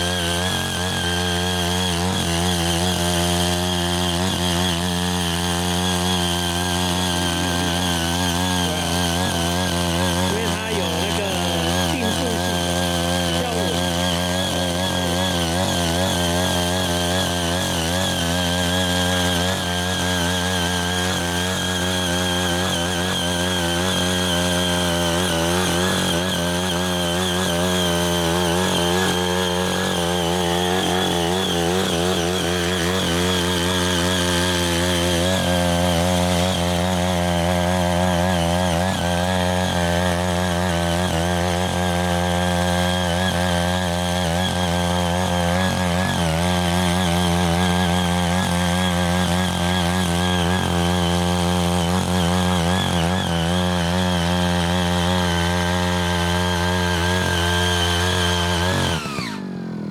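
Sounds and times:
power tiller engine running: 0.0 - 59.9
tines churning soil: 0.0 - 59.9.

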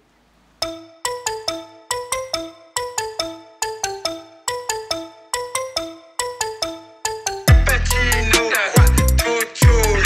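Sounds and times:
bell-like electronic melody: 0.6 - 9.2.

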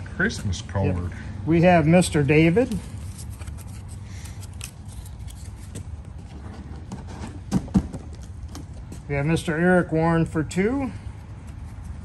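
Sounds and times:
paper bills rustling: 2.7 - 6.2.

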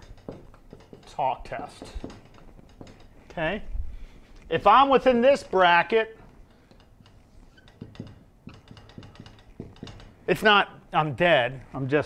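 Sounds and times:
marker tapping on whiteboard: 7.7 - 10.1.

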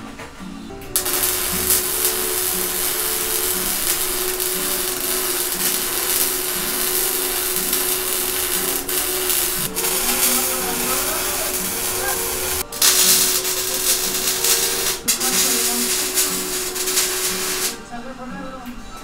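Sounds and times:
welding arc sizzling: 0.9 - 17.8.

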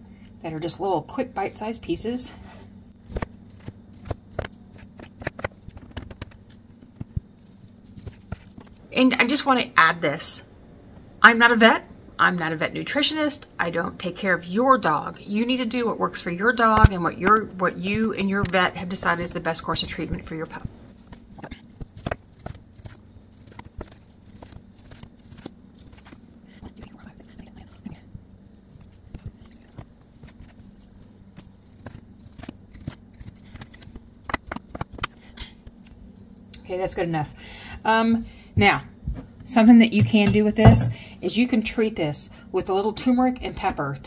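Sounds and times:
knife tapping on plastic cutting board: 40.0 - 41.0.

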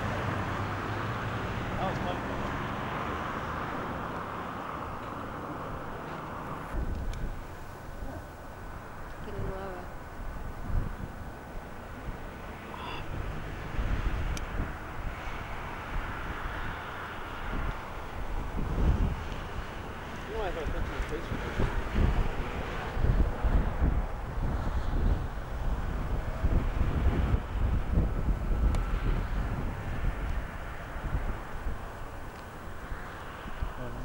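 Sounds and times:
steady outdoor hiss: 0.0 - 34.0
wind buffeting microphone: 0.0 - 34.0.

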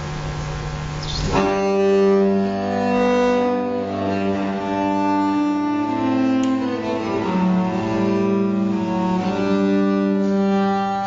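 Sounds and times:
low steady hum: 0.0 - 1.6
viol consort music: 1.2 - 11.0.

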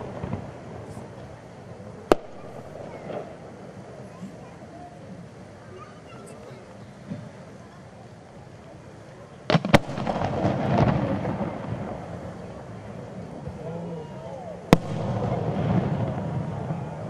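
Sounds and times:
rolling rumble: 0.0 - 5.6, 6.9 - 17.0
fireworks bursting: 0.0 - 17.0.

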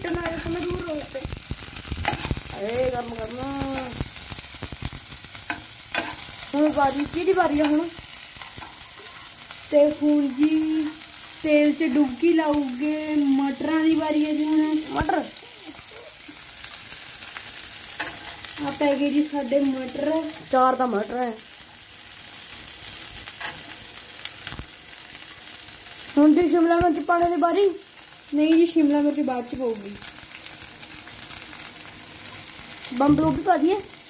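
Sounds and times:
onions sizzling in hot oil: 0.0 - 34.0.

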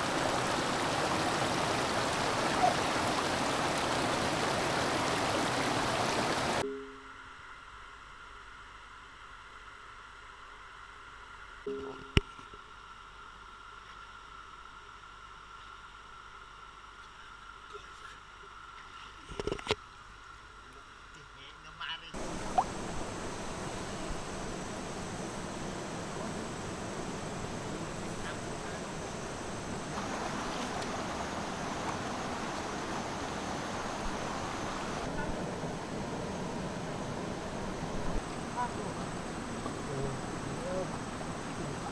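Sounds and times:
river rushing over rocks: 0.0 - 6.6, 22.2 - 41.9
muffled underwater sound: 27.5 - 29.2, 35.0 - 35.7, 38.3 - 41.9.

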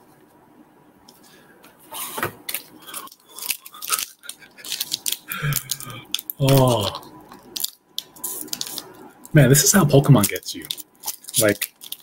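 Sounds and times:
wrapper crinkling and crackling: 2.5 - 9.3, 10.0 - 12.0.

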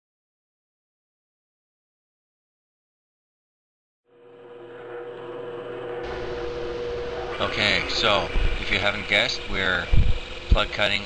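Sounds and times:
drill press motor running: 4.1 - 11.0.

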